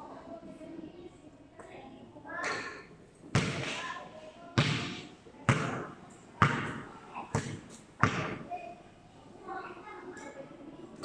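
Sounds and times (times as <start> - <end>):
basketball bouncing on concrete: 4.6 - 8.4.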